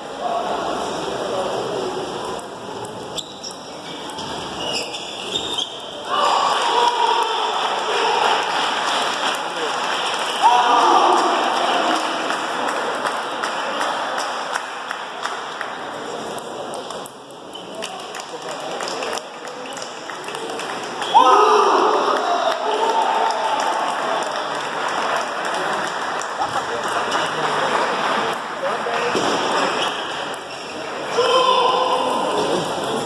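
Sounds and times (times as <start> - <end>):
people talking: 0.0 - 3.2, 15.7 - 33.0.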